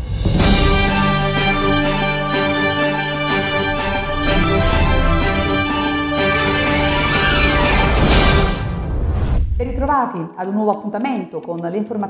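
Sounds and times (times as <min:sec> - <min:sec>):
news intro theme music: 0:00.0 - 0:09.8.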